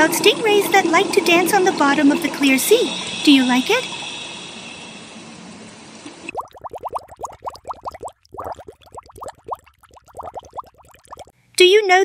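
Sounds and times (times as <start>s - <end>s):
steady hiss: 1.7s - 6.3s
cartoon bubbling sound effect: 6.3s - 11.3s.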